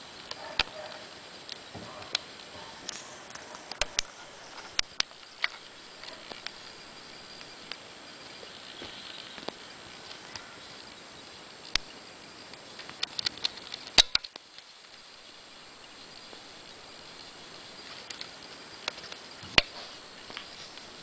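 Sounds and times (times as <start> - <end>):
steady hiss: 0.0 - 21.0.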